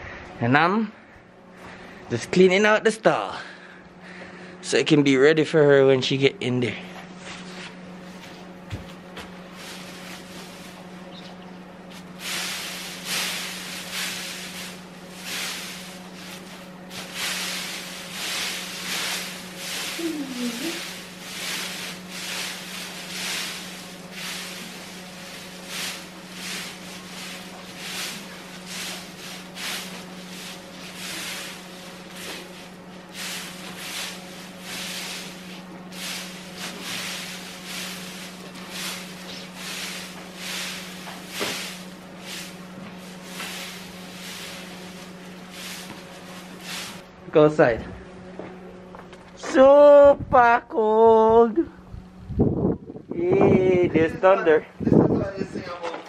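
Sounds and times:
steady low hum: 0.0s - 56.0s
pitchfork rustling straw: 9.3s - 47.1s.

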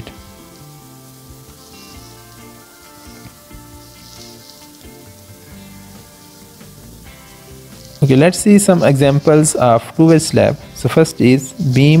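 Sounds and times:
quiet instrumental music: 0.0s - 12.0s
steady hiss: 0.0s - 12.0s.

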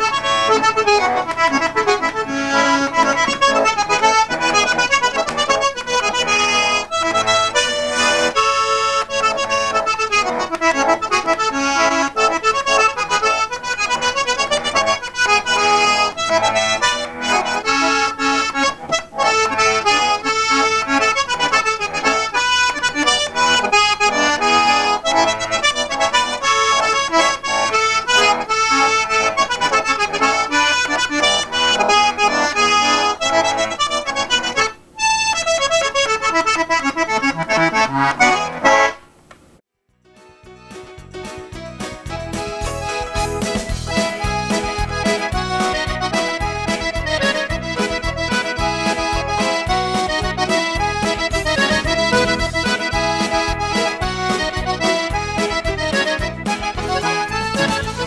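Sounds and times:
concertina playing tune: 0.0s - 38.9s, 40.2s - 58.0s.

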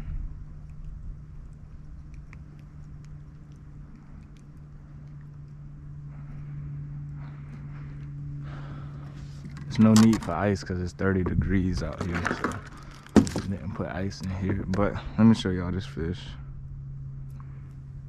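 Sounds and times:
steady low hum: 0.0s - 18.0s
handling clicks and knocks in boat: 9.4s - 10.6s, 11.2s - 14.9s.

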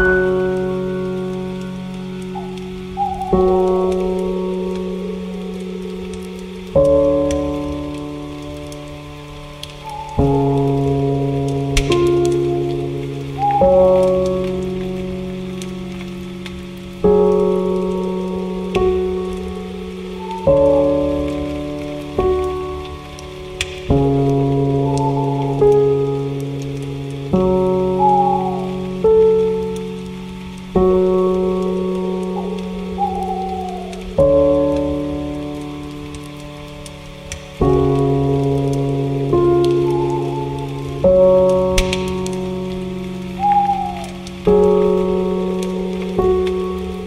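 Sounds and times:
falling bird calls: 0.0s - 16.0s, 17.7s - 23.9s, 24.6s - 26.4s, 27.2s - 30.4s, 31.1s - 37.6s, 39.2s - 47.0s
rain-like hiss: 0.0s - 47.0s
soft piano chords: 0.0s - 47.0s.

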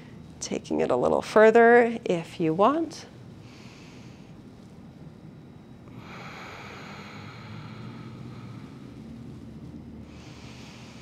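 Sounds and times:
low room hum: 0.0s - 11.0s
person breathing softly: 3.4s - 4.4s, 5.9s - 9.3s, 10.0s - 11.0s.

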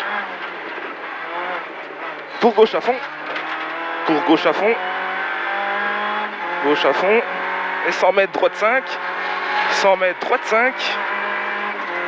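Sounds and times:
rally car engine running hard: 0.0s - 12.0s
tyre and road noise: 0.0s - 12.0s.

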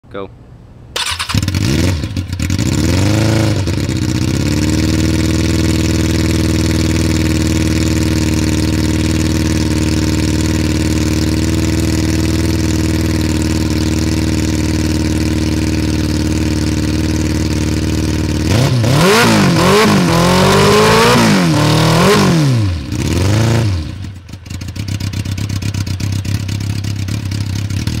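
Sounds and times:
motorcycle engine revving and idling: 1.0s - 28.0s.

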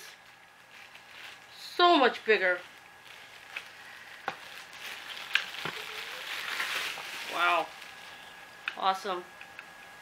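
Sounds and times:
plastic bag crinkling: 0.0s - 8.6s.

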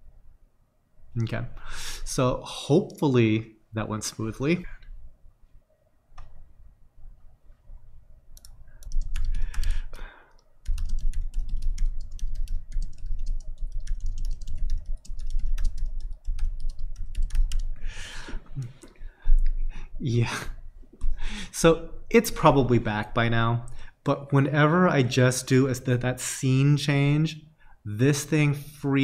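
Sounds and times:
rapid typing on computer keyboard: 8.4s - 17.8s.

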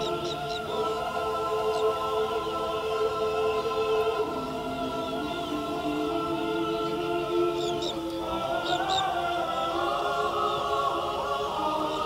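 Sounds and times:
choir singing sustained chords: 0.0s - 12.0s.

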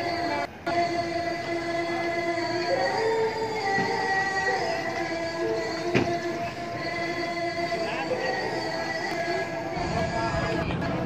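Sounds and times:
sustained held tones: 0.0s - 11.0s.

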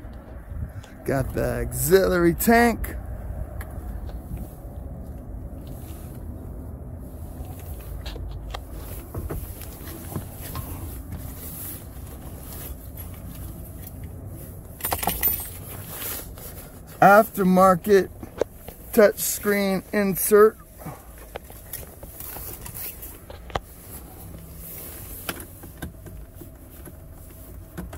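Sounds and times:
steady low rumble: 0.0s - 27.8s
handling noise: 3.5s - 19.6s, 20.5s - 27.9s.

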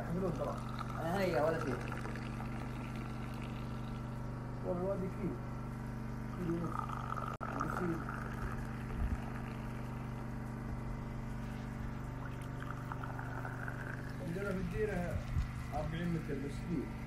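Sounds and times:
low machine hum: 0.0s - 17.0s.

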